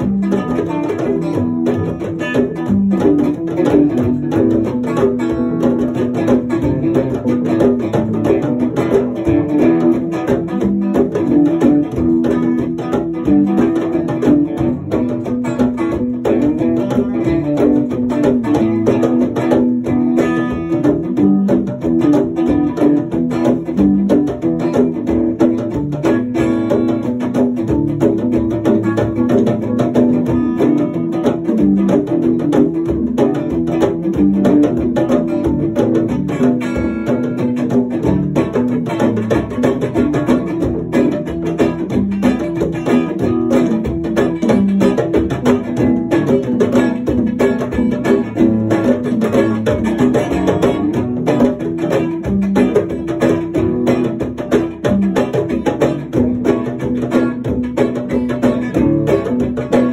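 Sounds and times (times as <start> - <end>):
djembe hand drums: 0.0 - 59.9
strummed string instrument: 0.0 - 59.9.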